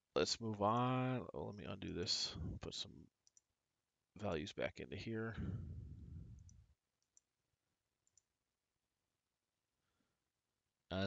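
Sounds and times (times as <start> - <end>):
computer mouse clicks: 8.0 - 8.3.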